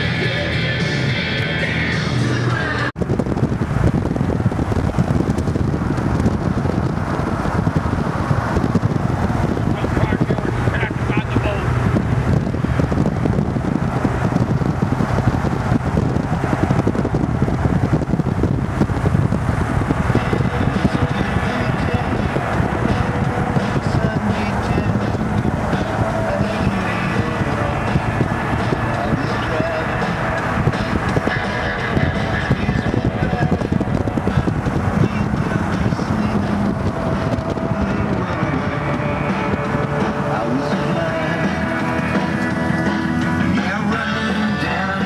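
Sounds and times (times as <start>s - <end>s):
traffic road and engine noise: 0.0s - 45.0s
wind rushing on microphone: 0.0s - 45.0s.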